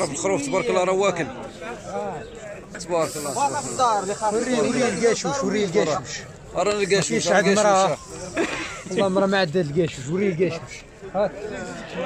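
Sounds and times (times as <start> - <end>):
men talking: 0.0 - 12.0
steady hiss: 2.8 - 5.8, 6.7 - 9.2.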